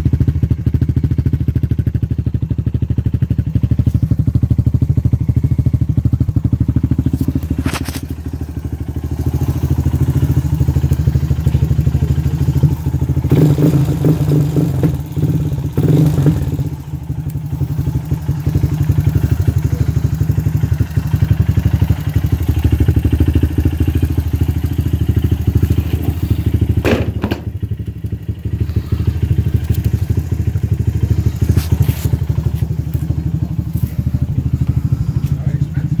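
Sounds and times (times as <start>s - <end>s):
quad engine idling: 0.0s - 36.0s.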